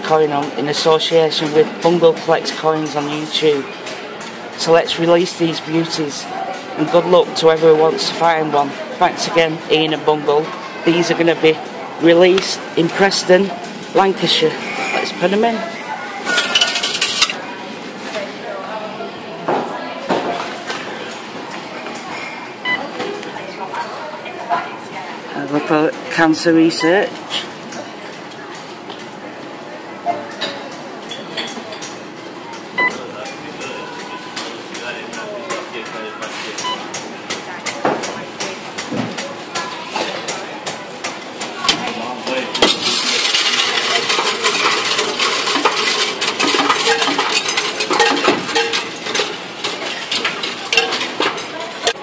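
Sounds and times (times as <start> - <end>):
coins clinking in counting machine: 16.2 - 17.4, 42.6 - 52.0.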